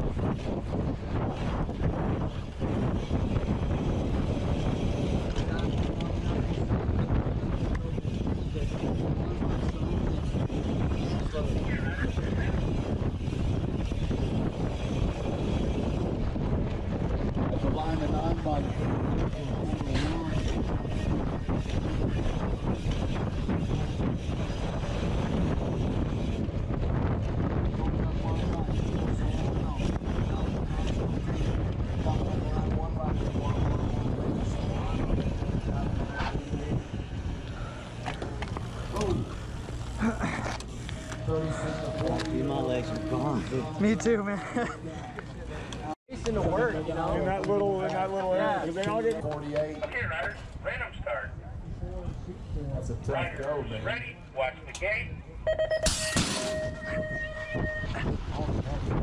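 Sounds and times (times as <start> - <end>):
wind rushing over microphone: 0.0 - 54.0, 55.2 - 59.0
faint voices: 0.3 - 55.5
bike rattles and knocks: 12.5 - 43.0.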